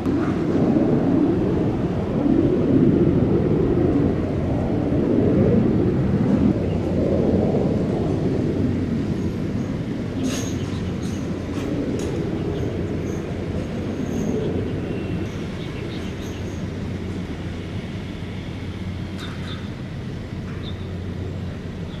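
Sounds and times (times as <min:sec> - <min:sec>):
jet engine roar: 0:00.0 - 0:22.0.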